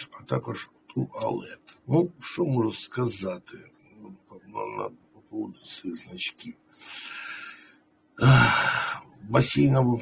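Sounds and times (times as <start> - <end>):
man sighing: 8.2 - 9.0.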